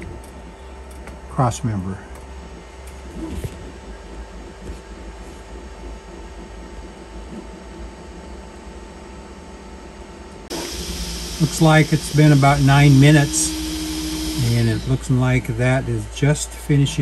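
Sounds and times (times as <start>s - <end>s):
printer fans and motors humming: 0.0s - 17.0s.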